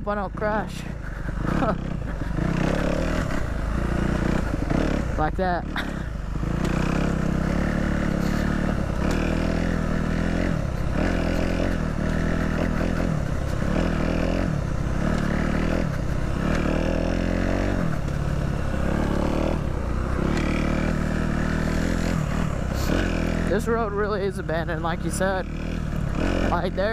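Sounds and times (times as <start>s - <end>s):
dirt bike engine revving: 0.0s - 26.9s.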